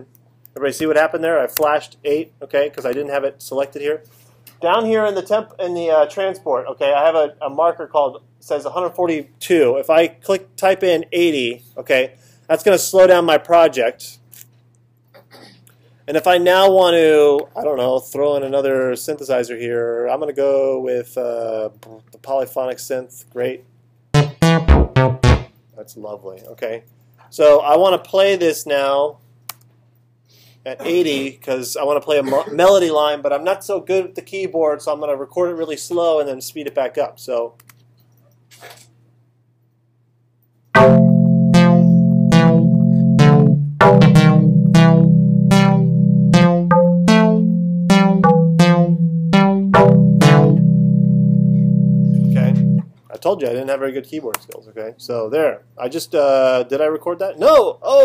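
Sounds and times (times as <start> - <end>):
low electrical hum: 0.0 - 24.1
synthesizer music: 24.2 - 25.5, 40.8 - 52.9.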